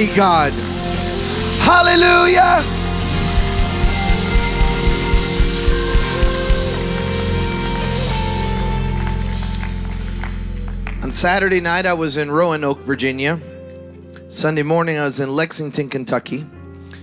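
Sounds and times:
sustained keyboard chords: 0.0 - 14.7
steady low beat: 0.6 - 8.9
congregation applauding: 2.7 - 11.6.

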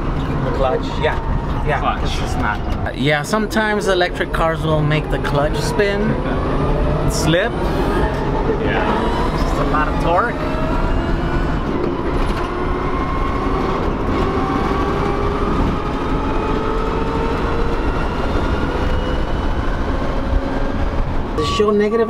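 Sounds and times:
road and wind noise: 0.0 - 22.0.

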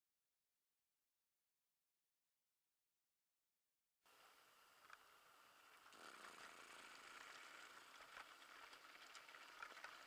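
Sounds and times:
bike tyres rolling on gravel: 5.6 - 10.0.

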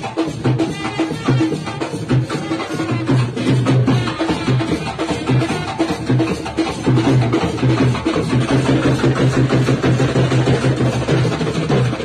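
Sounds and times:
fast dholak drumming: 0.0 - 12.0
live band music: 0.7 - 7.4.

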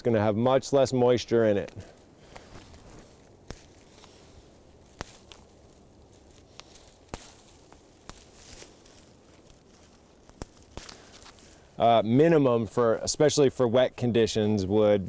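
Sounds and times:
rustle of needles and branches: 0.0 - 15.0
twigs snapping: 1.6 - 11.7.

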